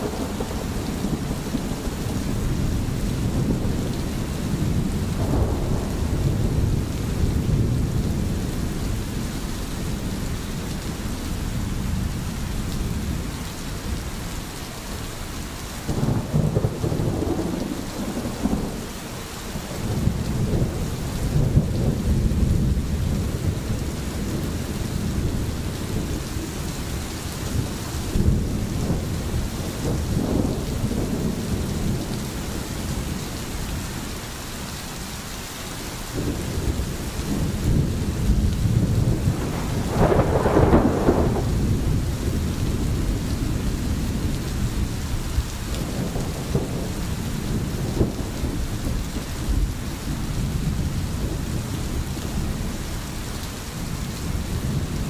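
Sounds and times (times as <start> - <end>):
distant thunder rumbling: 0.0 - 14.0, 15.8 - 34.2, 36.2 - 55.0
steady rain: 0.0 - 55.0.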